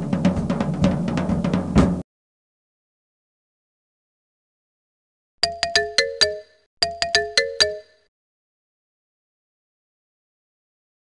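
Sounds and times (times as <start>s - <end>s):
electronic chime jingle: 5.4s - 8.1s.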